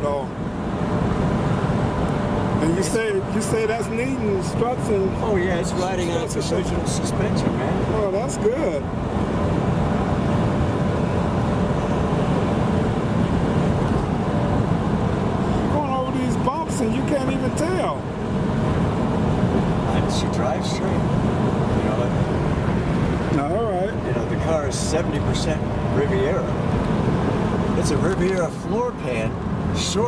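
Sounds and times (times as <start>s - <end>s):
car engine rumble: 0.0s - 30.0s
road and tyre noise: 0.0s - 30.0s
wind: 0.0s - 30.0s.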